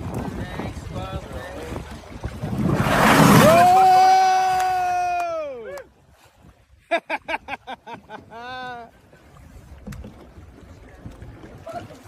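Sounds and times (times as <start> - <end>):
low wind: 0.0 - 12.0
water noise: 0.0 - 12.0
person laughing: 6.9 - 8.9.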